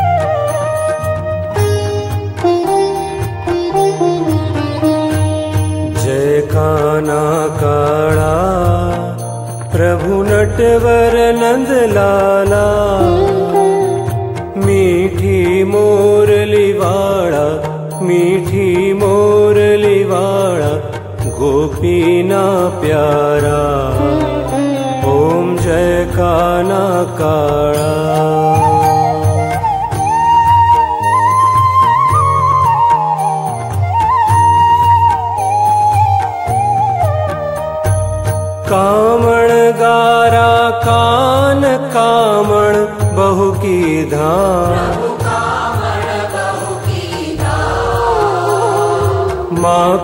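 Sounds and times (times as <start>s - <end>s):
devotional instrumental melody: 0.0s - 50.0s.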